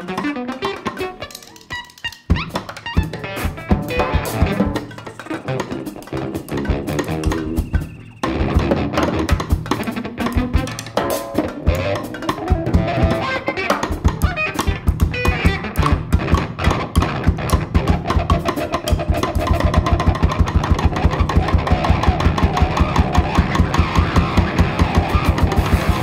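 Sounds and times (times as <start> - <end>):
drum kit: 0.0 - 26.0
guitar: 0.0 - 26.0
instrumental band music: 0.0 - 26.0.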